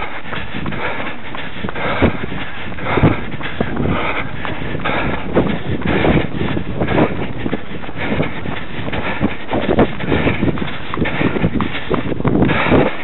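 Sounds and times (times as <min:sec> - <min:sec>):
footsteps on grass: 0:00.0 - 0:13.0.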